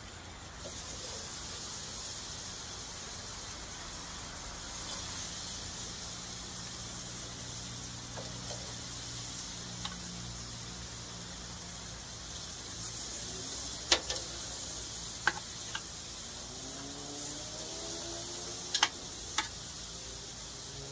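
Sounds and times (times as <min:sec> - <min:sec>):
meat sizzling on a grill: 0:00.0 - 0:20.9
metal tongs clicking on grate: 0:13.9 - 0:14.3, 0:18.7 - 0:19.6.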